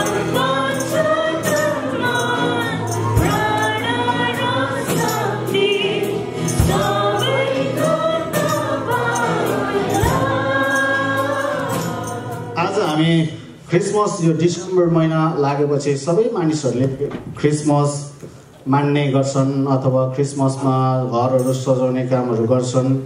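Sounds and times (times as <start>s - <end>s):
group singing in unison: 0.0s - 12.8s
tambourine jingling: 0.0s - 13.4s
strummed acoustic guitars: 0.0s - 13.6s.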